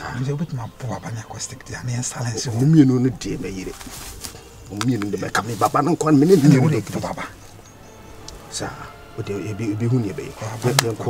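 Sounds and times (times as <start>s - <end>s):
man talking: 0.0s - 4.0s, 4.6s - 7.4s, 8.4s - 11.0s.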